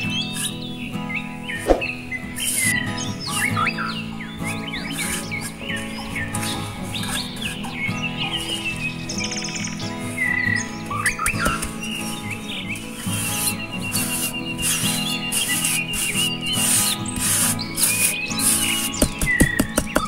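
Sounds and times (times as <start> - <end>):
background music: 0.0 - 20.0
birds chirping and calling: 0.0 - 20.0.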